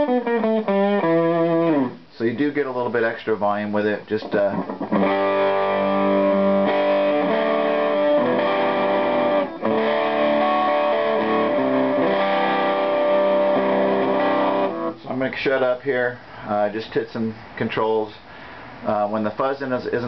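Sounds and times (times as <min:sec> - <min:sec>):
distorted electric guitar chords: 0:00.0 - 0:02.1, 0:04.3 - 0:15.0.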